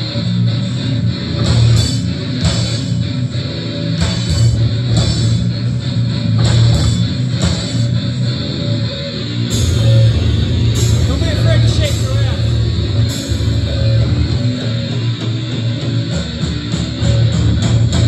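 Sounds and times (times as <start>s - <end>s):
death metal band playing live: 0.0s - 18.0s.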